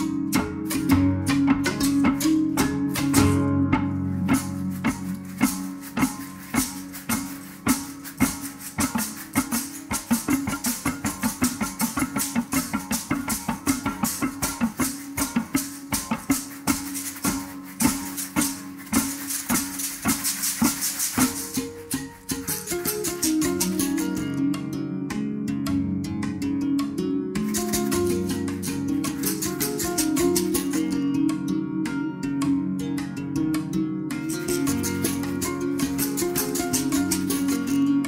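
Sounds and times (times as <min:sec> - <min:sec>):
berimbau strings struck with sticks: 0:00.0 - 0:38.0
basket rattles shaken: 0:04.4 - 0:23.8.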